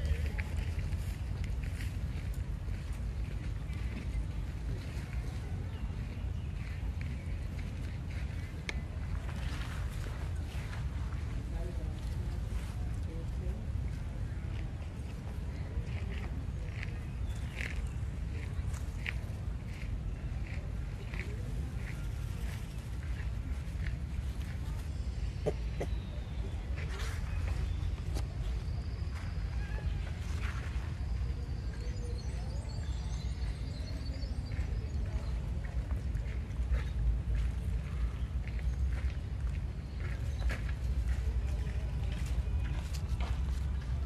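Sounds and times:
steady low rumble: 0.0 - 44.0.

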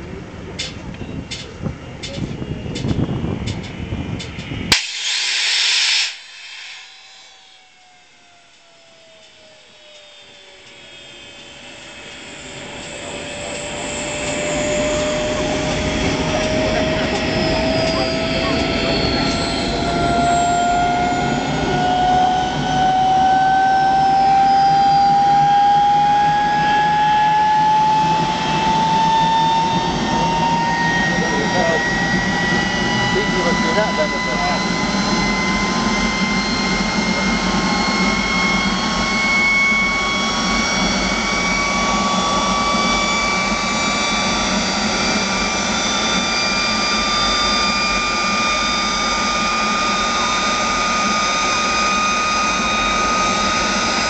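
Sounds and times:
jet engine spooling up: 1.7 - 54.0
loud hiss: 4.7 - 7.8.

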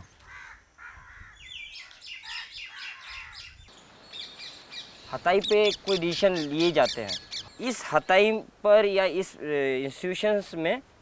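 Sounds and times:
bird short repeated calls: 0.2 - 8.1.

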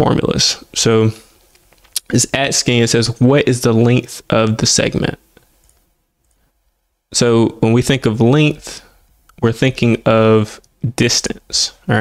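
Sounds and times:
person speaking: 0.0 - 5.6, 7.1 - 12.0.

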